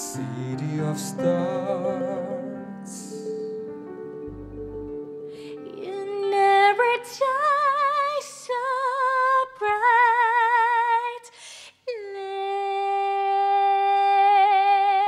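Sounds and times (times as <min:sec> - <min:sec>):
faint musical accompaniment: 0:00.0 - 0:07.0
woman singing with vibrato: 0:05.2 - 0:15.0.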